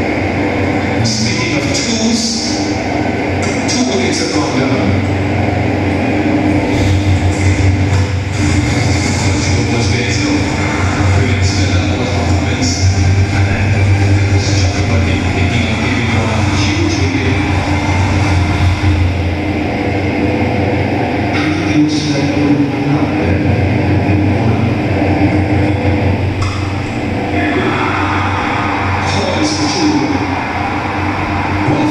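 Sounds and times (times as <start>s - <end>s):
constant low hum: 0.0s - 31.9s
faint commentary: 0.0s - 31.9s
rumbling broadcast background sound: 0.0s - 31.9s.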